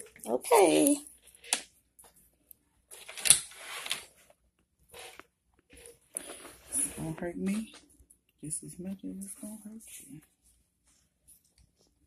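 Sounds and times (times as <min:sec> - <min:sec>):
quiet rustling and handling: 0:00.0 - 0:12.0.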